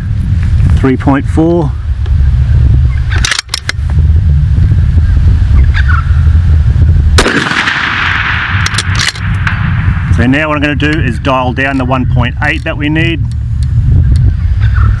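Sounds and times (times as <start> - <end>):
wind rumble on microphone: 0.0 - 15.0
rifle shots: 7.2 - 10.0.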